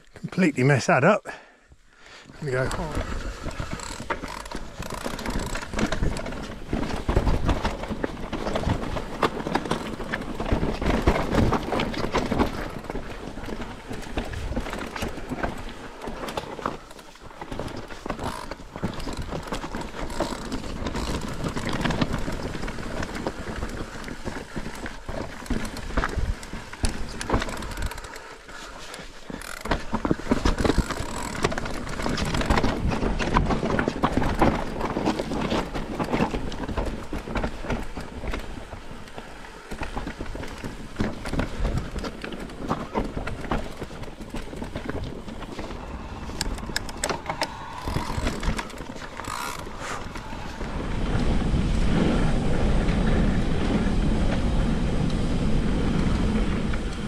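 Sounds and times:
mountain bike rattling on rocky trail: 0:02.3 - 0:57.0.

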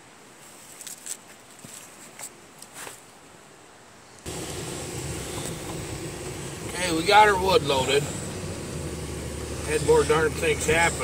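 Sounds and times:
truck engine drone inside cab: 0:04.3 - 0:11.0.

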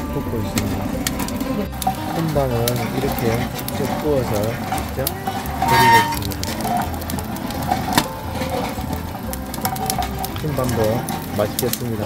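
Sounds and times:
roasting machine drum humming: 0:00.0 - 0:12.0.

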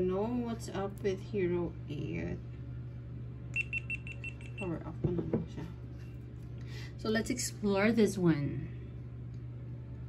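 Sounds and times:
camera short high beeps: 0:03.6 - 0:04.7.

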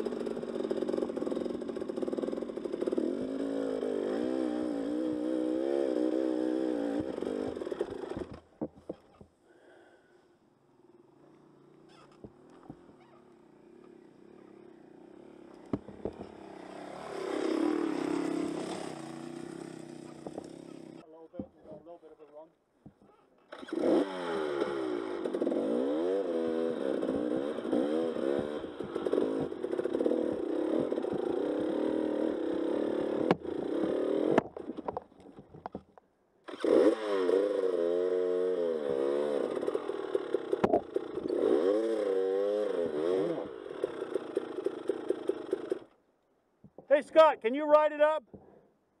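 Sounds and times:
dirt bike engine revving: 0:00.0 - 0:08.4, 0:11.4 - 0:21.0, 0:23.5 - 0:35.0, 0:36.5 - 0:46.0.

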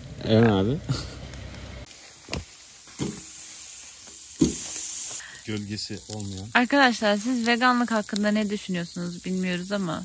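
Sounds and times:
charcoal burning: 0:00.0 - 0:10.0
charcoal popping: 0:00.0 - 0:10.0
food sizzling on grill: 0:00.0 - 0:10.0.

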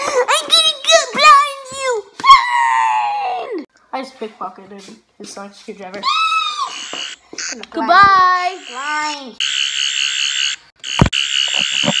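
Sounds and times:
toy high electronic buzz: 0:08.4 - 0:12.0.

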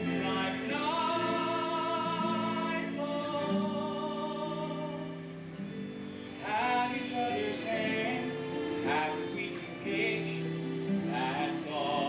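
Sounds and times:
solo voice singing: 0:00.0 - 0:05.3, 0:06.4 - 0:12.0
instrumental accompaniment: 0:00.0 - 0:12.0.

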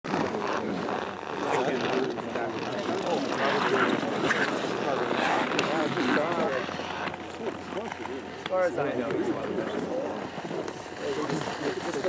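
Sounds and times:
people talking indistinctly: 0:00.1 - 0:12.0
steady background rush: 0:00.1 - 0:12.0.

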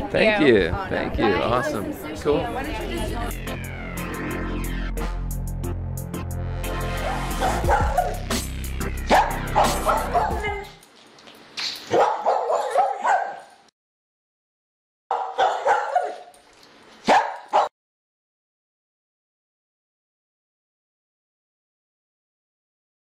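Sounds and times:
electronic music with bass beat: 0:02.8 - 0:10.7
dog barking: 0:07.0 - 0:08.2, 0:09.1 - 0:10.6, 0:11.9 - 0:13.6, 0:15.1 - 0:16.3, 0:17.0 - 0:17.7.

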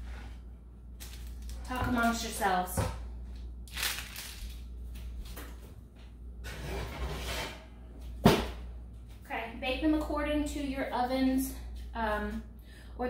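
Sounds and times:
baking sheet scraping: 0:06.4 - 0:07.8.

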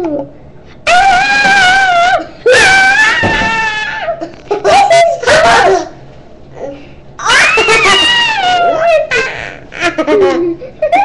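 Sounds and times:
children shrieking: 0:00.9 - 0:05.9, 0:07.2 - 0:09.7.

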